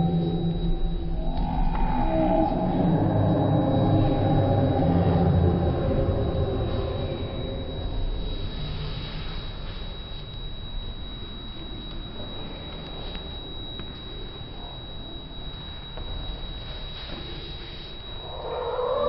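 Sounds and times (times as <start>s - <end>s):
low drawn-out rumble: 0.0s - 11.2s
thin high whistle: 0.0s - 19.0s.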